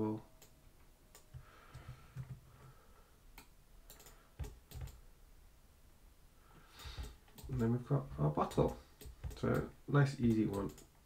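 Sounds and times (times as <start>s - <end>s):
computer mouse and keyboard clicks: 3.4s - 5.0s, 6.8s - 7.7s, 8.4s - 10.9s.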